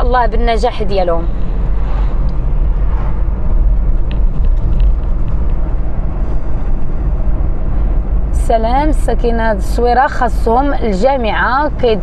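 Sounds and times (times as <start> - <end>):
car interior road and engine rumble: 0.0 - 12.0.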